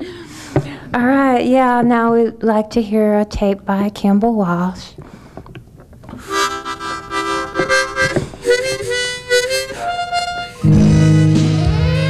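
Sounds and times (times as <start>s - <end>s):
harmonica playing chords: 6.2s - 12.0s
band music with heavy bass: 10.6s - 12.0s.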